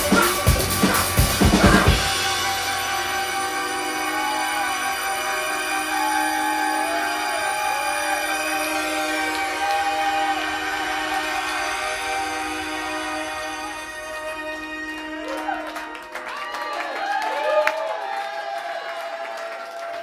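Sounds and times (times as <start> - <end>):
synthesizer low drone: 0.0 - 16.1
sliding sustained synthesizer tones: 0.8 - 16.1.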